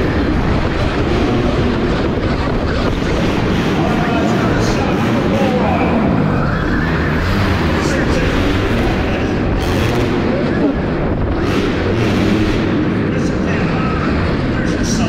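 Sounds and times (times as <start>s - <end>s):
wind and track noise: 0.0s - 15.0s.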